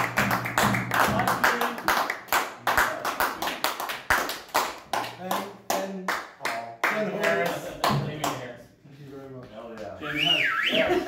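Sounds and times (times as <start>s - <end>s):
hand clapping: 0.0s - 8.5s
voices talking: 9.9s - 11.0s.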